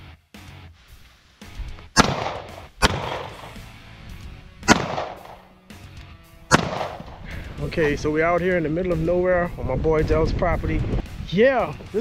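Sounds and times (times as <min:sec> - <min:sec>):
background music: 0:00.0 - 0:12.0
handgun shots: 0:02.0 - 0:03.6, 0:04.6 - 0:05.5, 0:06.5 - 0:07.3.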